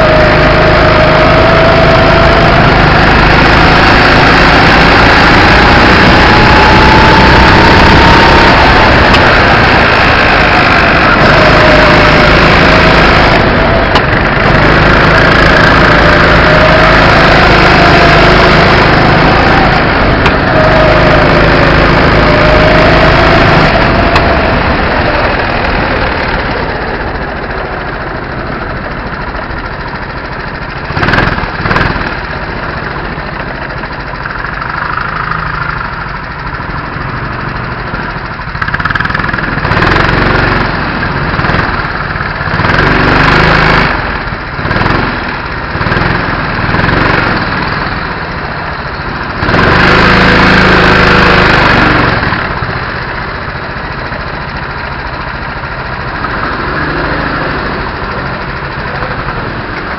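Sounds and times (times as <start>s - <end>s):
go-kart engine running and idling: 0.0s - 59.9s.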